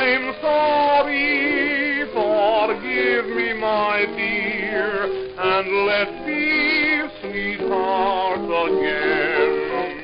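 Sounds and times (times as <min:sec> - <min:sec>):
old dance band record: 0:00.0 - 0:10.0.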